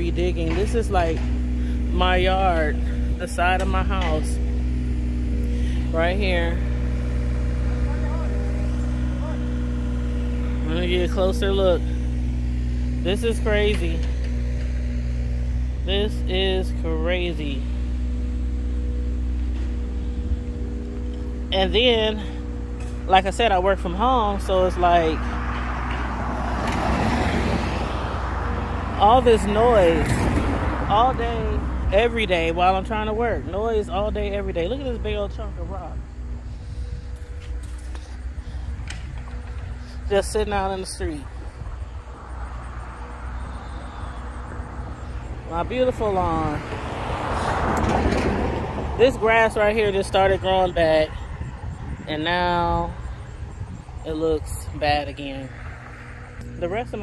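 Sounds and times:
engine running: 0:00.0 - 0:57.0.

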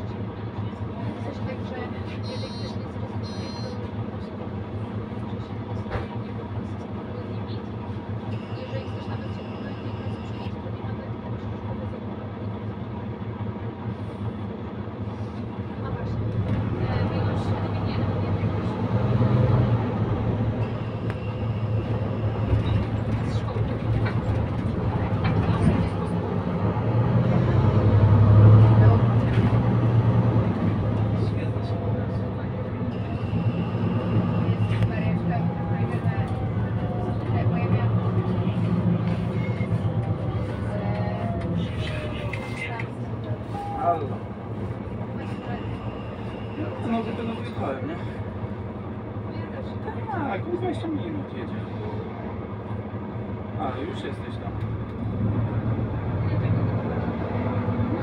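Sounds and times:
bus diesel engine: 0:00.0 - 0:58.0.

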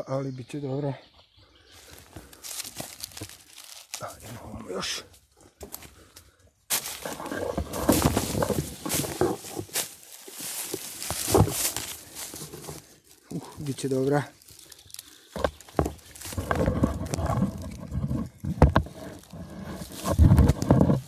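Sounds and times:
footsteps on dry leaves: 0:01.8 - 0:06.1, 0:06.7 - 0:21.0.

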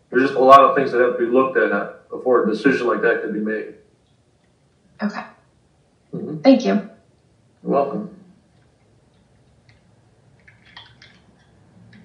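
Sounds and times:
low hum: 0:00.0 - 0:12.0
person speaking: 0:00.1 - 0:03.7, 0:06.1 - 0:06.8, 0:07.6 - 0:08.2.

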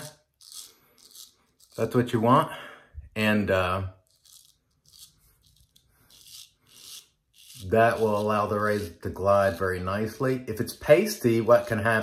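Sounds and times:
straight razor scraping stubble: 0:00.0 - 0:02.3, 0:04.0 - 0:12.0.

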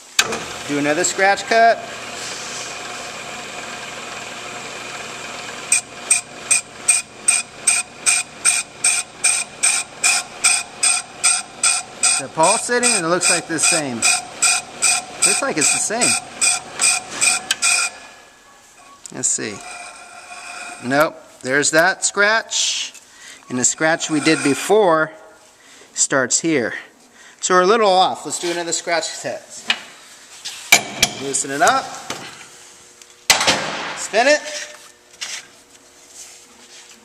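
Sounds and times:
lathe bit scraping brake drum: 0:00.2 - 0:18.3, 0:19.2 - 0:21.1, 0:23.5 - 0:25.0.

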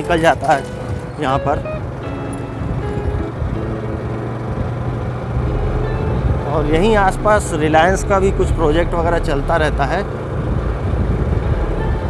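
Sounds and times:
faint background music: 0:00.0 - 0:12.0
vehicle engine and road noise: 0:00.0 - 0:12.0.

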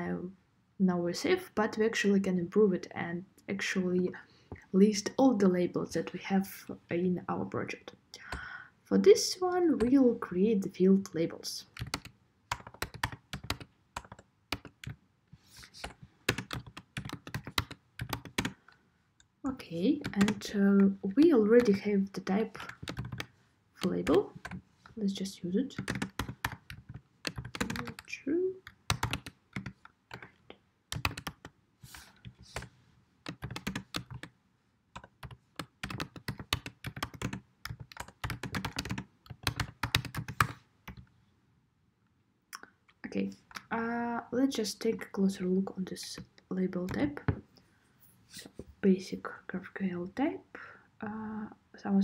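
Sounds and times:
typing on computer keyboard: 0:11.8 - 0:15.0, 0:15.8 - 0:18.6, 0:22.6 - 0:24.6, 0:25.8 - 0:28.1, 0:28.7 - 0:30.3, 0:30.9 - 0:31.5, 0:33.3 - 0:34.3, 0:35.0 - 0:41.0.

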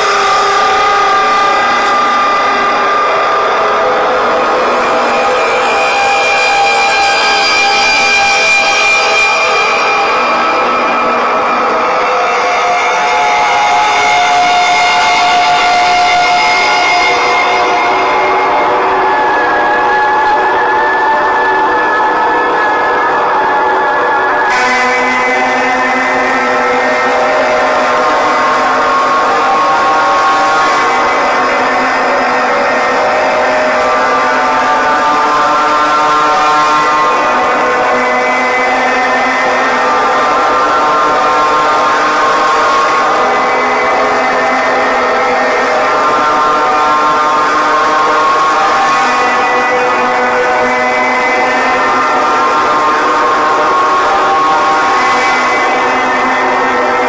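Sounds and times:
drone of held tones: 0:00.0 - 0:57.0.

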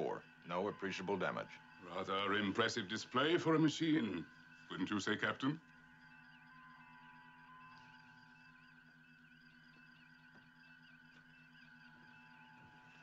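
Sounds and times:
steady electronic hum: 0:00.0 - 0:13.0
warbling beeps: 0:00.0 - 0:13.0.

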